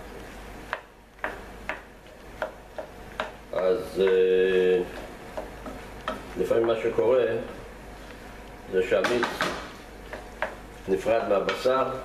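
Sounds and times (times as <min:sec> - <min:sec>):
wooden spatula knocking on pan: 0:00.7 - 0:07.6, 0:09.0 - 0:10.7.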